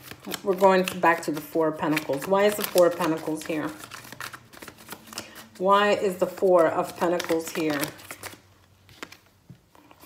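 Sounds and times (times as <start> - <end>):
cards shuffling: 0.0 - 10.0.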